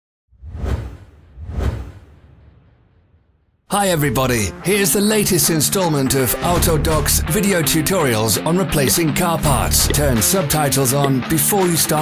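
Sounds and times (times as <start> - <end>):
whoosh sound effects: 0.3 - 3.3.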